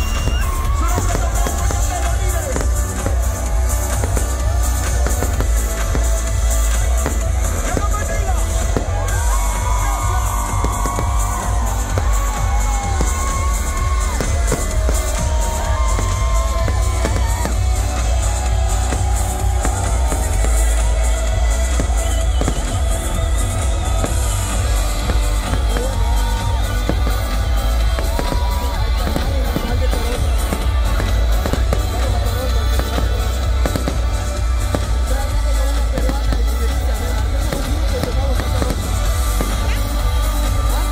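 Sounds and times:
crowd cheering: 0.0s - 40.9s
fireworks popping and banging: 0.0s - 40.9s
loud concert music with bass: 0.0s - 40.9s.

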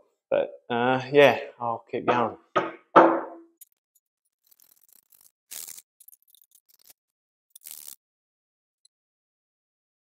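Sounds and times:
metal clicks and scrapes: 3.6s - 8.0s.

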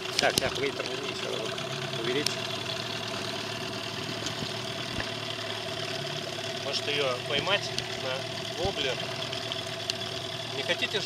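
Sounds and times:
motorboat engine idling: 0.0s - 11.0s.

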